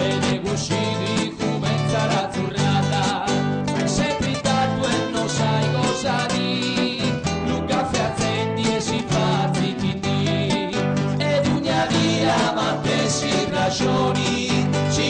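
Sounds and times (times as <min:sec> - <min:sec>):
acoustic guitars strumming: 0:00.0 - 0:15.0
man singing: 0:00.0 - 0:15.0.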